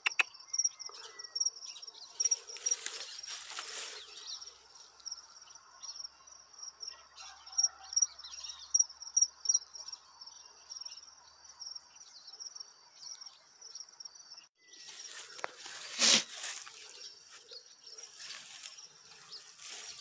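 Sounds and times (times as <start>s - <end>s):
crickets chirping: 0.0s - 7.0s, 8.7s - 20.0s.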